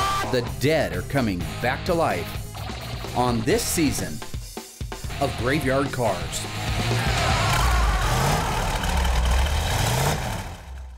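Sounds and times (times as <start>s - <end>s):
car engine rumbling and revving: 6.4s - 10.9s.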